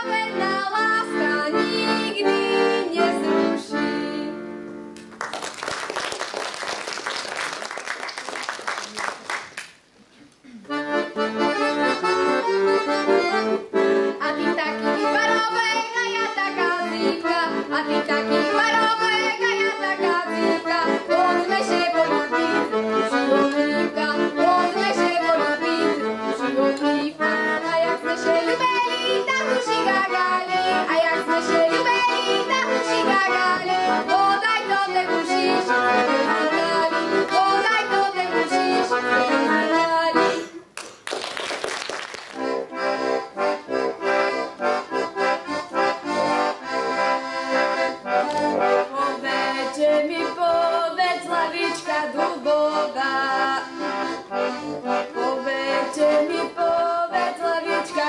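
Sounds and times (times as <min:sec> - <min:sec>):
accordion folk tune: 0:00.0 - 0:07.6, 0:10.3 - 0:58.0
audience applause: 0:05.1 - 0:09.7, 0:40.8 - 0:42.4.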